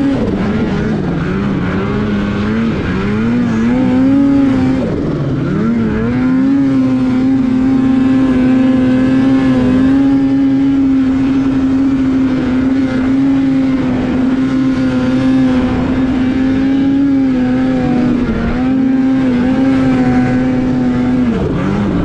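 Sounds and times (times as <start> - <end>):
snowmobile engine revving: 0.0 - 22.0.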